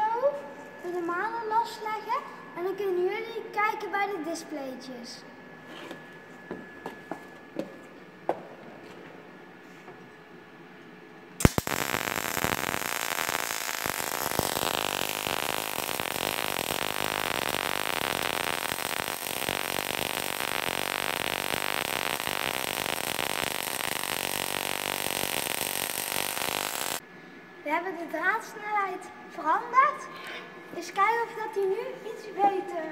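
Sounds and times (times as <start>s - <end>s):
welding arc crackling: 11.4s - 27.0s.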